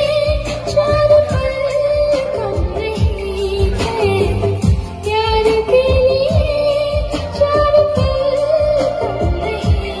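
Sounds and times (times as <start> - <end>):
backing track with beat: 0.0 - 10.0
woman singing into microphone: 0.0 - 10.0.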